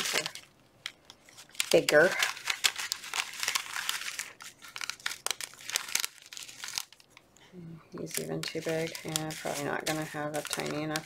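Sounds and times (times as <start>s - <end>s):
plastic bag crinkling: 0.0s - 7.3s, 8.0s - 11.0s.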